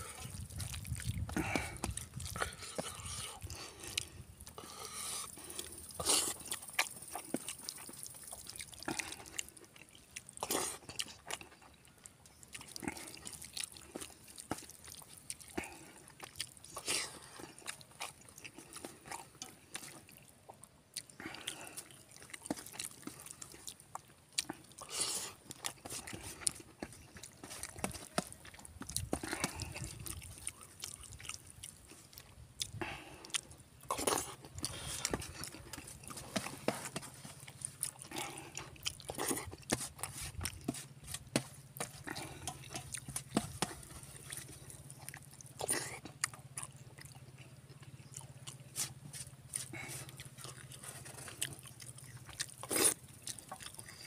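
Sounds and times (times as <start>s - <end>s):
man chewing with wet mouth sounds: 0.0s - 54.0s.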